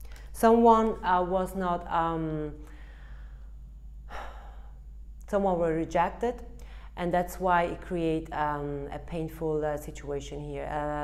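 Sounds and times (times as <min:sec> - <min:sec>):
steady low hum: 0:00.0 - 0:11.0
woman breathing in: 0:02.6 - 0:05.0, 0:06.6 - 0:07.0.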